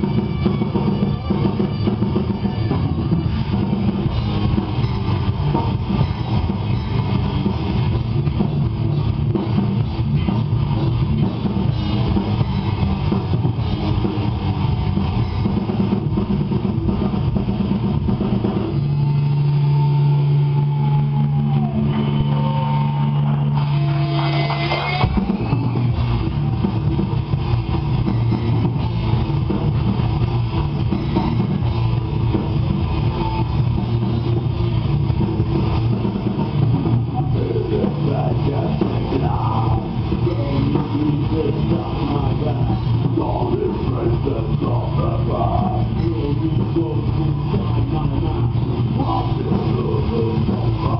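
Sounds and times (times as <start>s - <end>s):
heavy metal band playing live: 0.0s - 50.9s.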